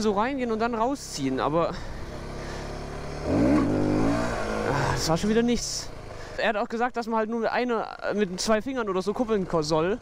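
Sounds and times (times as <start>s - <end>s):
motorcycle engine revving: 0.9s - 6.4s.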